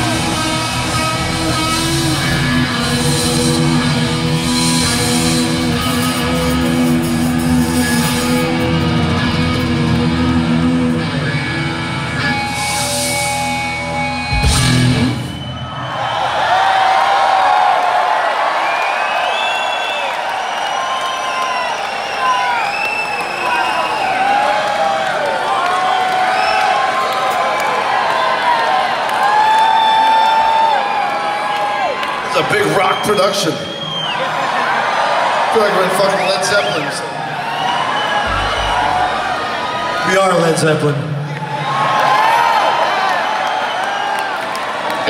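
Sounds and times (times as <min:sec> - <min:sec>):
rock band playing live: 0:00.0 - 0:15.9, 0:38.2 - 0:41.3
crowd cheering and whistling: 0:00.0 - 0:45.0.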